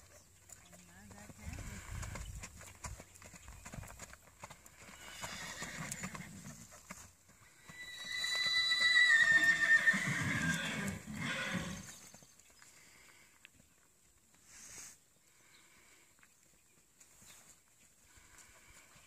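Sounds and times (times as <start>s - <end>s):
horse hoofbeats: 0.0s - 12.6s
horse whinnying: 5.0s - 6.4s, 7.6s - 12.0s.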